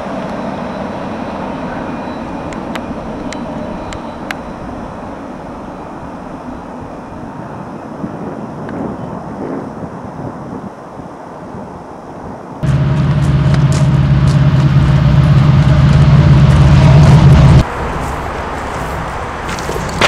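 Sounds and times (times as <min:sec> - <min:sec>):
loud steady low drone: 0:00.0 - 0:07.7, 0:12.6 - 0:19.4
freight train rumbling past: 0:00.0 - 0:20.0.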